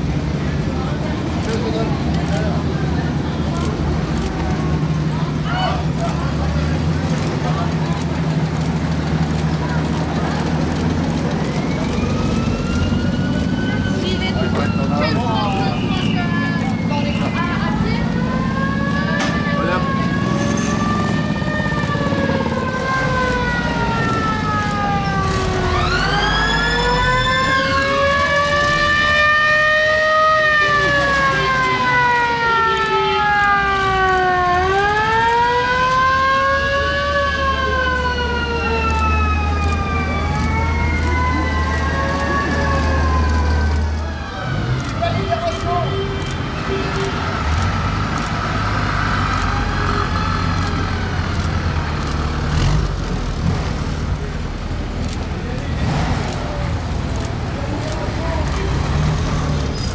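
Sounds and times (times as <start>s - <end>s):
truck engine drone passing: 0.0s - 59.9s
vehicle engines running at low speed: 0.0s - 59.9s
sirens wailing: 8.5s - 52.8s.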